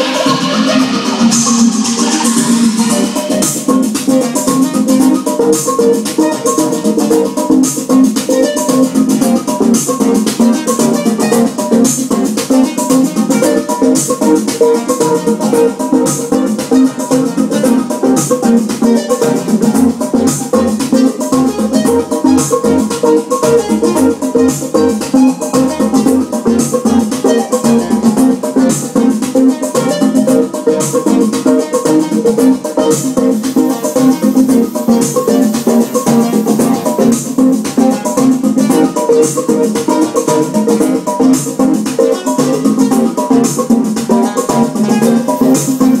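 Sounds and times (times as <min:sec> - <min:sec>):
fast ticking drum machine pattern: 0:00.0 - 0:46.0
sustained synth tones: 0:00.0 - 0:46.0.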